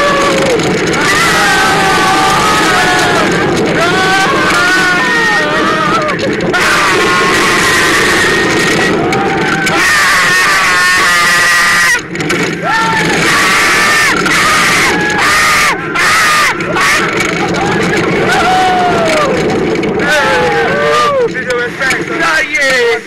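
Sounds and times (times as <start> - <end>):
riders yelling and whooping: 0.0 - 23.0
roller coaster rushing: 0.0 - 23.0.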